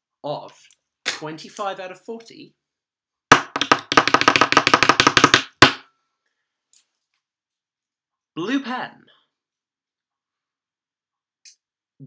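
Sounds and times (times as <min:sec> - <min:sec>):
drumroll tapped on tabletop: 0:03.3 - 0:05.8.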